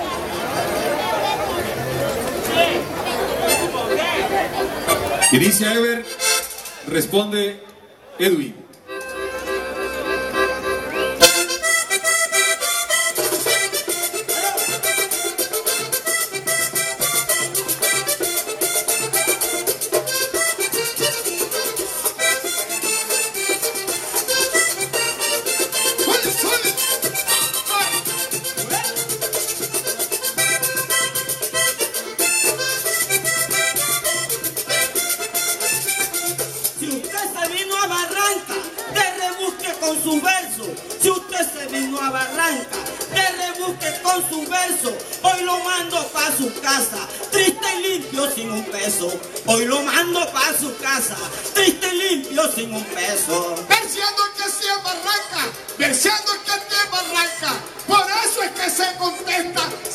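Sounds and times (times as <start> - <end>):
button accordion melody: 0.6 - 7.2, 8.9 - 59.9
scraper rhythm: 2.6 - 7.0, 9.0 - 59.9
hand drum: 11.2 - 39.8.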